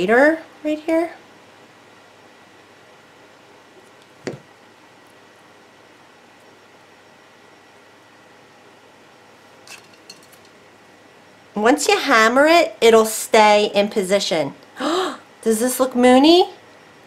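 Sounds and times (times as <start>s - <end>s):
room hiss: 0.0s - 17.0s.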